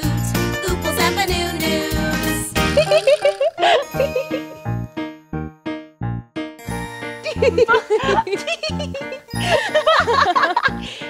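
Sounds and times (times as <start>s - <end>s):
upbeat children's music jingle: 0.0s - 11.0s
warbling melody: 2.7s - 4.8s
tinkling bell-like notes: 2.8s - 5.1s, 9.3s - 10.8s.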